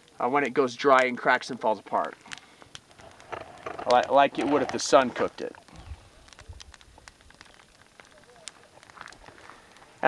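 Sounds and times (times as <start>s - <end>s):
campfire coals crackling: 0.0s - 10.0s
small sharp pops: 1.9s - 10.0s.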